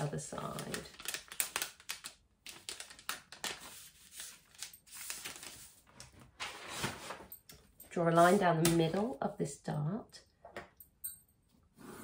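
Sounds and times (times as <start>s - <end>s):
paper rustling and crinkling: 0.5s - 7.4s.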